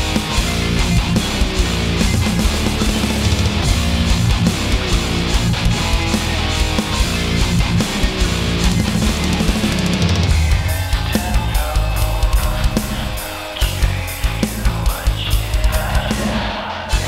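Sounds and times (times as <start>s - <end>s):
heavy metal instrumental: 0.0s - 17.0s.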